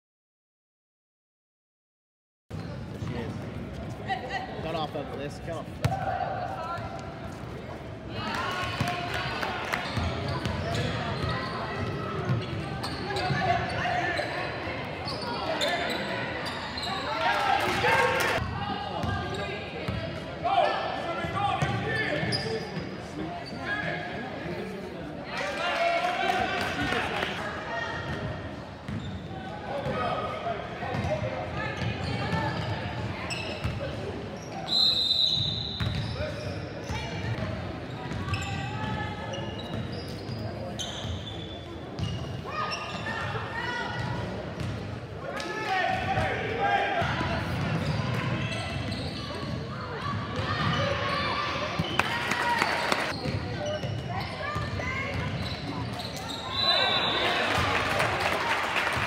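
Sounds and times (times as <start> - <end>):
referee's whistle: 34.6 - 36.2, 55.5 - 57.5.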